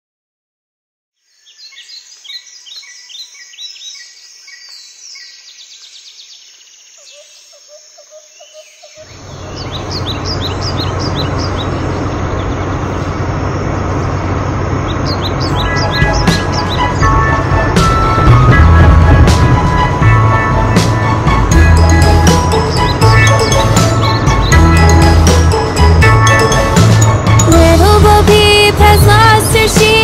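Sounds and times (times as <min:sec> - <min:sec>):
birds chirping: 0:01.2 - 0:30.0
off-road buggy engine rumble: 0:09.0 - 0:30.0.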